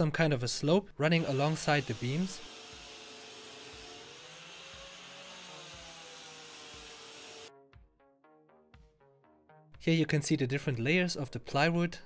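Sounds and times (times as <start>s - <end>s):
soft background music: 0.2s - 12.0s
angle grinder sanding wood: 1.1s - 7.5s.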